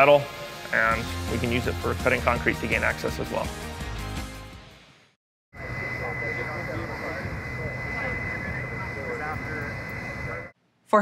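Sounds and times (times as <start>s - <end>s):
high whine: 0.0s - 3.4s, 5.6s - 10.6s
faint voices: 5.6s - 10.5s
fire truck engine running: 5.6s - 10.6s.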